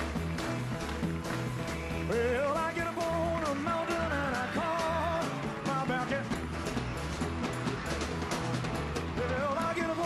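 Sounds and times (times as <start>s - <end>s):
rock band playing: 0.0s - 10.0s
person singing: 2.1s - 6.4s, 9.2s - 10.0s.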